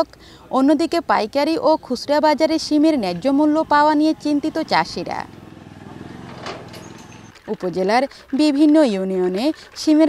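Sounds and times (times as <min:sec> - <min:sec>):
motorcycle engine running: 0:02.0 - 0:07.4.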